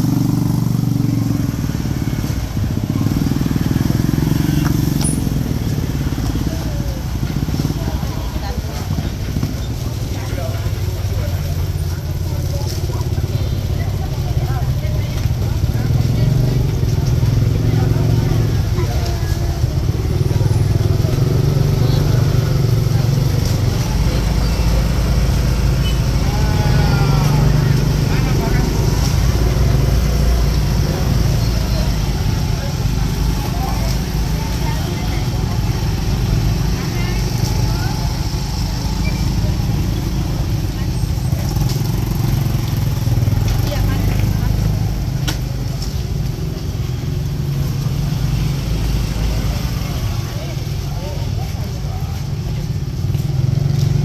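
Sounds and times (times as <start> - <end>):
many people talking: 0.0 - 54.0
motorcycle engines passing: 0.0 - 54.0.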